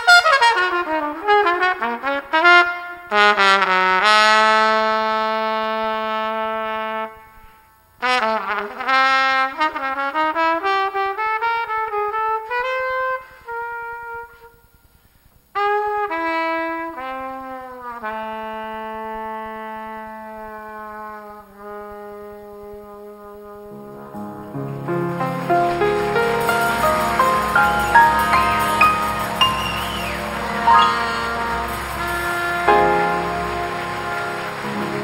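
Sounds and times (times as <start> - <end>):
solo jazz trumpet: 0.0 - 35.0.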